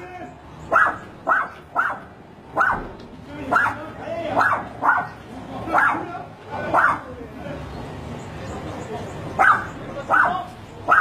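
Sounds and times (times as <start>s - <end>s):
dog barking: 0.7s - 2.9s, 3.5s - 3.8s, 4.4s - 6.0s, 6.7s - 7.1s, 9.4s - 11.0s.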